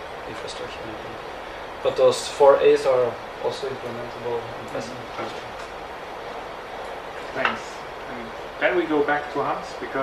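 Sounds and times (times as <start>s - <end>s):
room tone hiss: 0.0s - 10.0s.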